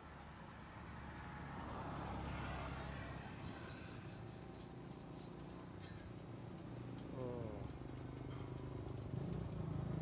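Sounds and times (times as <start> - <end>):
motor vehicle passing by: 0.0 - 10.0.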